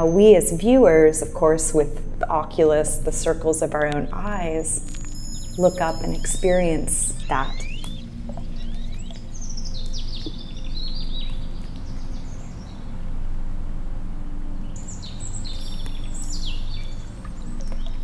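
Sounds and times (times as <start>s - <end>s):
steady low drone: 0.0s - 18.0s
bird chirps descending in pitch: 4.3s - 11.3s.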